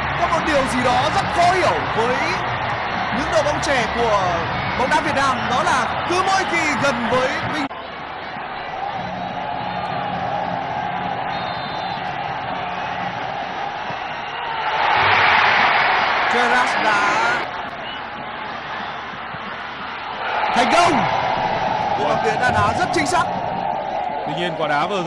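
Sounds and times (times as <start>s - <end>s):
stadium crowd cheering: 0.0s - 25.0s.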